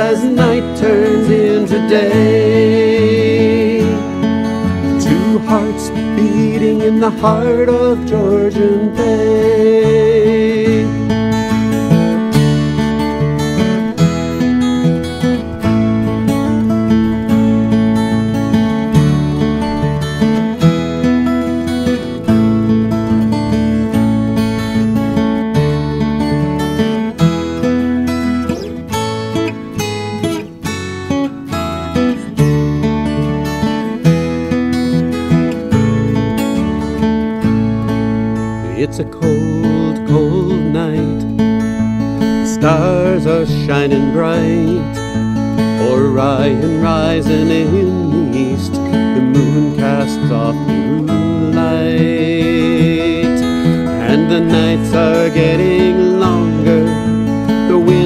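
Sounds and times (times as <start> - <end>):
acoustic guitar strumming: 0.0 - 58.0
electric bass line: 0.0 - 58.0.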